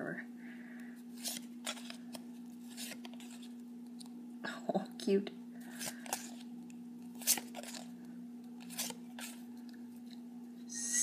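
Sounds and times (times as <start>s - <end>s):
cards swishing when flipped: 7.1s - 7.9s, 8.6s - 9.4s.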